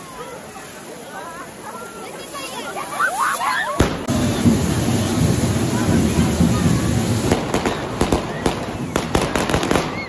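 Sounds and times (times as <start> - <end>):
crowd shouting: 0.0 - 10.0
fireworks fizzing: 0.0 - 10.0
sharp crack: 3.8 - 5.2.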